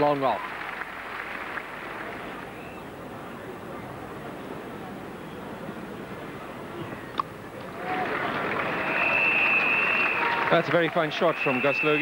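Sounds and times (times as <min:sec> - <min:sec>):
crowd applause: 0:00.0 - 0:02.8, 0:07.6 - 0:12.0.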